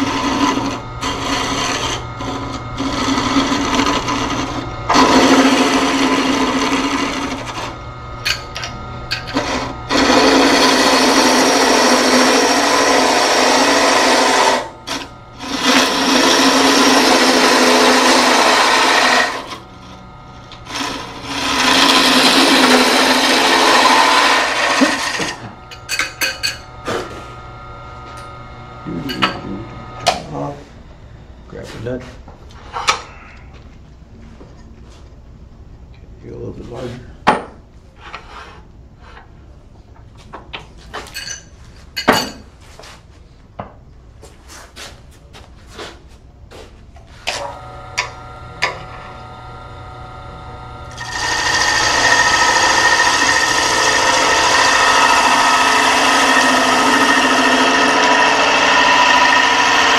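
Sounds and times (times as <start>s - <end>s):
gouge cutting wood on lathe: 0.0s - 30.0s, 47.3s - 59.9s
wood lathe humming: 0.0s - 30.6s, 47.2s - 59.9s.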